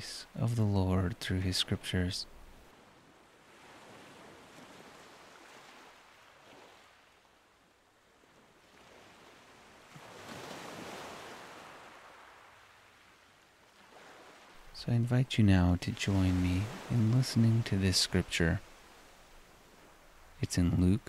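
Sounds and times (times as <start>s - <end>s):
faint ocean waves: 0.0s - 21.0s.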